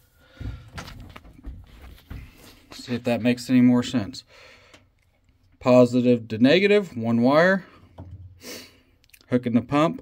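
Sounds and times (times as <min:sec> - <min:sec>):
faint movement noise: 0:00.2 - 0:04.2.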